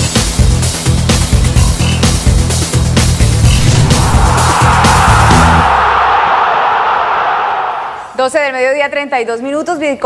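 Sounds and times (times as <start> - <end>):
intro music with bass beat: 2.5 - 6.1
rushing sound effect: 3.3 - 8.2.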